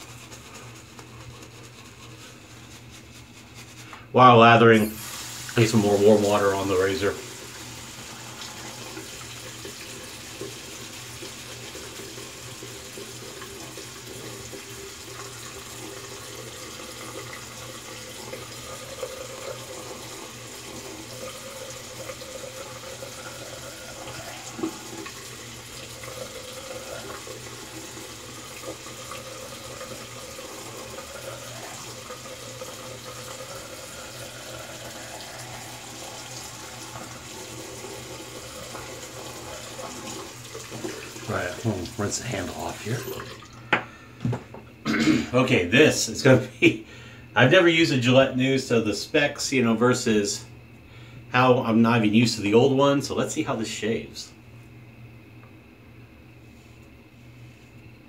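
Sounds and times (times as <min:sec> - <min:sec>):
sink tap running: 0:03.9 - 0:44.7.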